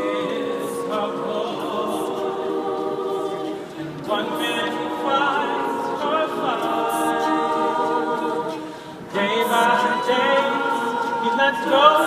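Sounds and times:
women's choir singing: 0.0s - 12.0s.

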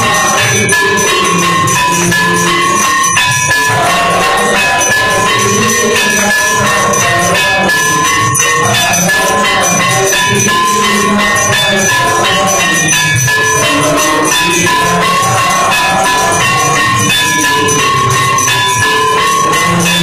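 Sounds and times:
bell ringing: 0.0s - 20.0s
cymbals clashing: 0.0s - 20.0s.

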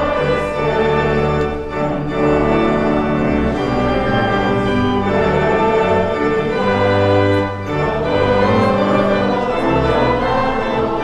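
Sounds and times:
organ playing slow chords: 0.0s - 11.0s.

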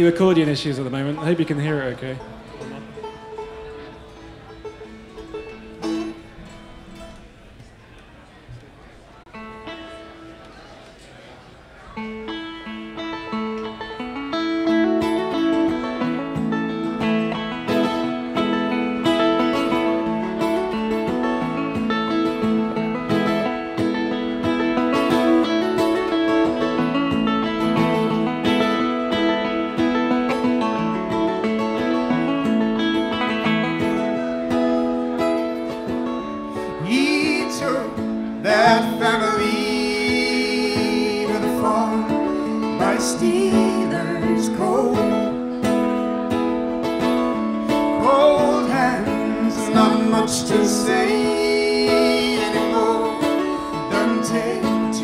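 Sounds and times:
folk band playing: 0.0s - 55.0s
person singing: 36.6s - 45.5s, 47.7s - 55.0s.

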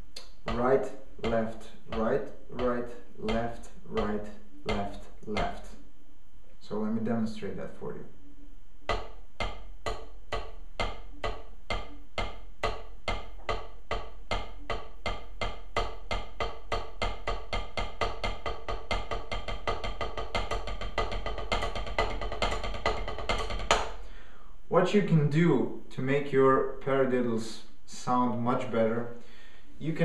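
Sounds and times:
drumsticks on rubber practice pad: 0.2s - 5.8s, 8.9s - 24.0s.

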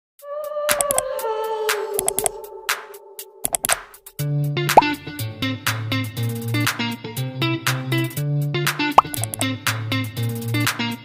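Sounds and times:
rising bloop pop effect: 4.8s - 5.0s, 9.0s - 9.4s.

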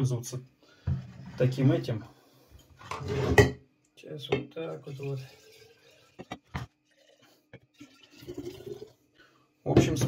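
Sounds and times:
glassware rattling and scraping: 2.8s - 3.6s, 5.4s - 7.2s.

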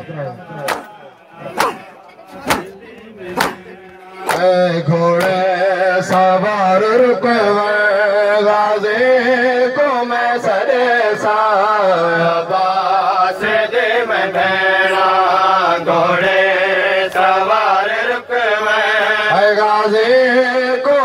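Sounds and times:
man singing a lament: 0.0s - 21.0s.

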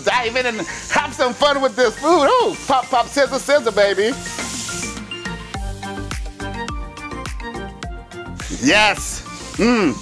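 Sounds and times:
shrimp sizzling in oil: 0.0s - 7.2s, 8.2s - 10.0s
background music with steady beat: 0.0s - 10.0s.

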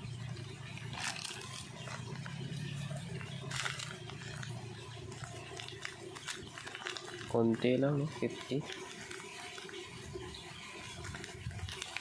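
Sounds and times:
plastic packaging crinkling: 0.6s - 12.0s.

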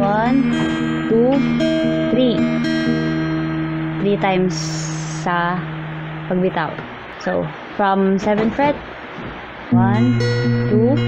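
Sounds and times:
fingerpicked acoustic guitar: 0.0s - 7.3s, 8.2s - 11.0s.

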